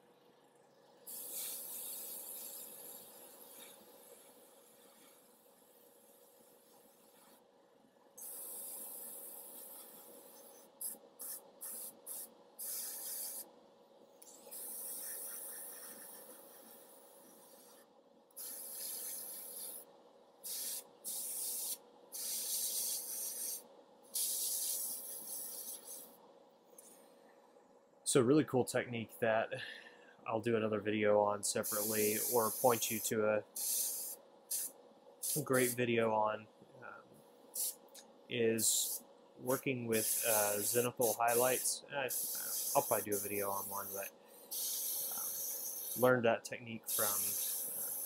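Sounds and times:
faint steady hum: 0.0 - 48.0
airbrush spraying hiss: 1.1 - 7.4, 8.2 - 13.5, 14.2 - 26.2, 31.6 - 35.8, 37.5 - 38.0, 38.6 - 48.0.

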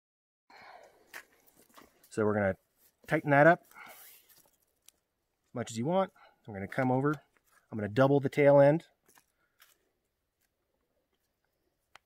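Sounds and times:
faint rustling of cord: 0.8 - 7.9, 8.9 - 12.0.

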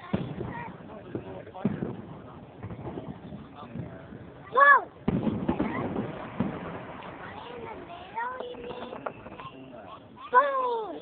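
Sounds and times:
distant fireworks bangs: 0.0 - 10.7.

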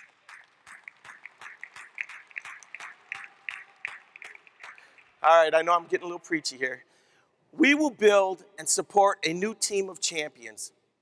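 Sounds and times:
light applause: 0.0 - 5.6.

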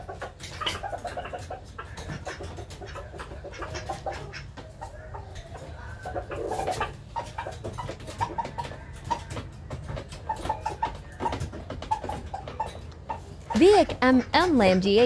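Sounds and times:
rooster clucking: 0.0 - 15.0.

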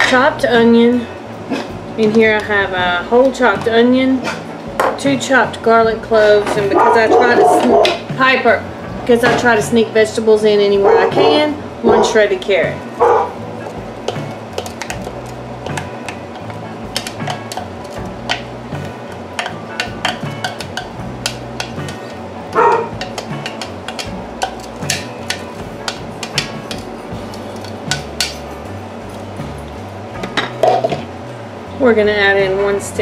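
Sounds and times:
plastic spatula scraping and tapping: 13.6 - 18.5, 19.4 - 28.3.

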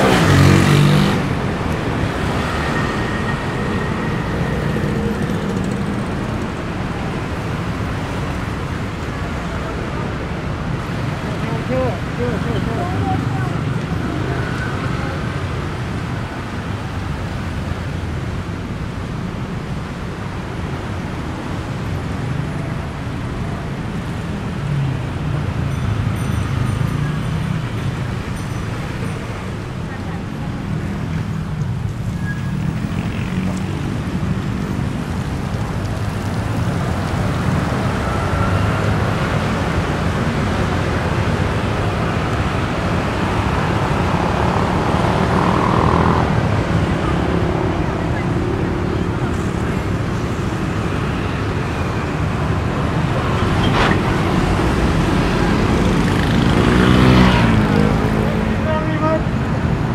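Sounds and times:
heavy road traffic rumble: 0.0 - 59.9.

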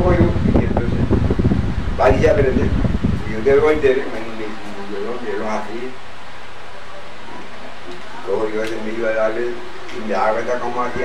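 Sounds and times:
wind buffeting microphone: 0.0 - 6.0
man speaking: 2.0 - 6.0, 8.2 - 11.0.

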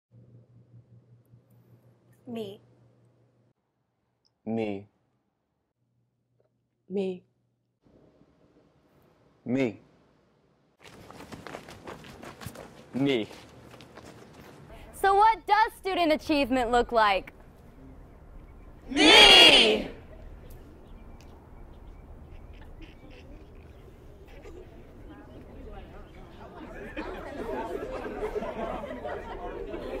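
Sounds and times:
footsteps of person running: 10.8 - 14.7
crowd chattering: 22.3 - 30.0.

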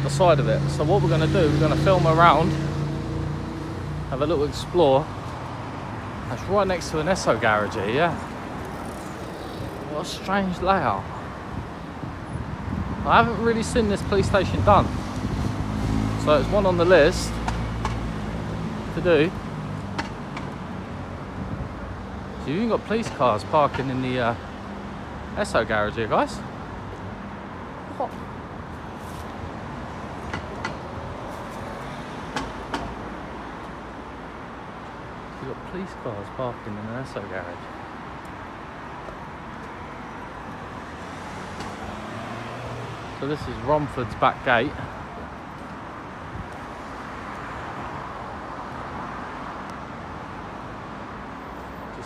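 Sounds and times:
low rumble of road traffic: 0.0 - 52.0.

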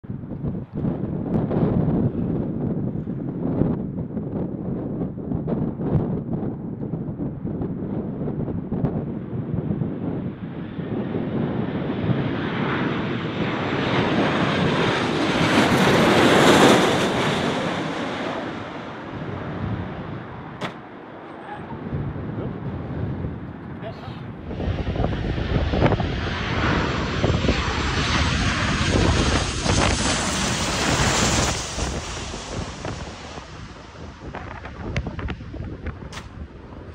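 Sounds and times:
jet engines with whine: 0.1 - 36.9
sharp bang: 20.6 - 21.0.

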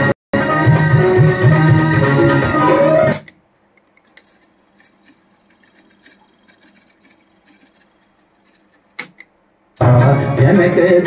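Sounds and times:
song playing from cassette deck: 2.2 - 3.4
cassette transport ticking: 3.1 - 9.4.

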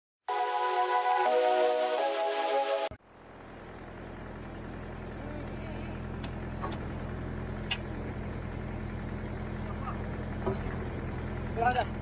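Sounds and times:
engine humming: 0.3 - 12.0.

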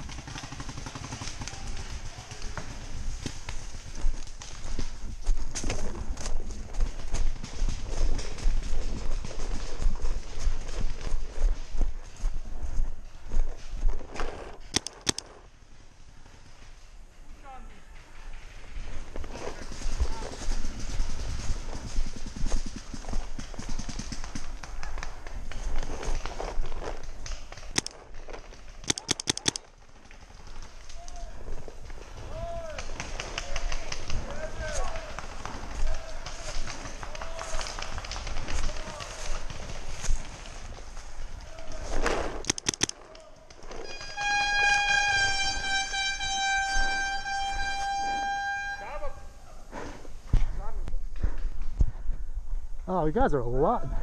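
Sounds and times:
footsteps in dry leaves: 2.6 - 14.7, 34.6 - 43.0
paintball marker firing: 28.8 - 29.7, 42.0 - 43.0
air horn blast: 43.9 - 49.0.

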